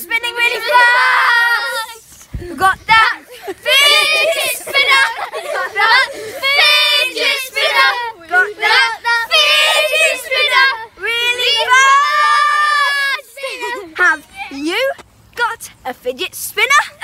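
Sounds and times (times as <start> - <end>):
boys singing together: 2.7 - 13.9.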